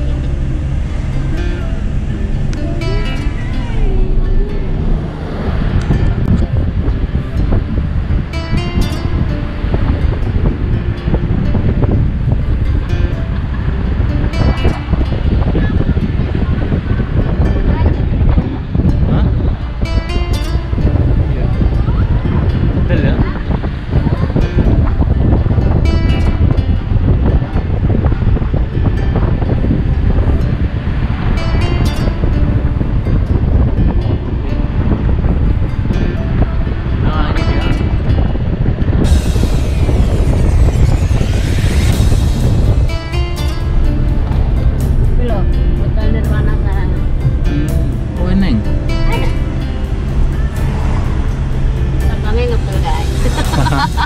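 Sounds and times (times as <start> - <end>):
car road and engine rumble: 0.0 - 54.0
music playing: 0.0 - 54.0.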